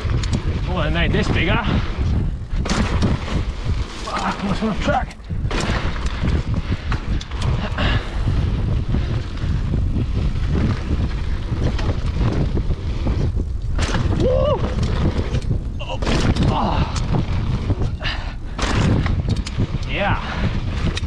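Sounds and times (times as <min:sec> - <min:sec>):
bike rattling over bumps: 0:00.0 - 0:21.0
wind buffeting microphone: 0:00.0 - 0:21.0
tyres rolling over sand: 0:00.6 - 0:07.8.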